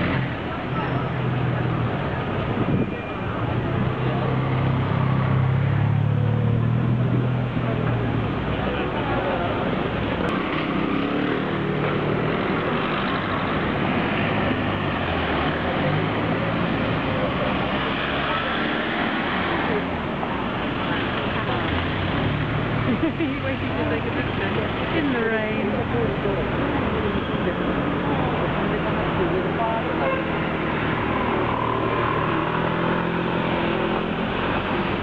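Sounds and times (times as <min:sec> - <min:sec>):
people talking: 0:00.0 - 0:35.0
street traffic noise: 0:00.0 - 0:35.0.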